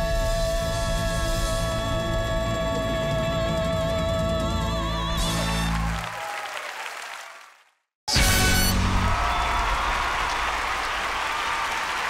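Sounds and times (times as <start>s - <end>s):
audience applauding: 5.3s - 7.8s, 8.4s - 12.0s.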